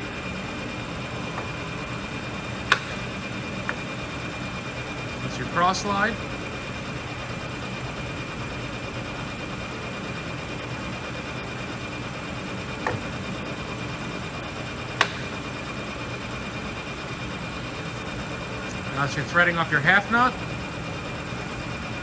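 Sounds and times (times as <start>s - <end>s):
lathe running with hum and whine: 0.0s - 22.0s.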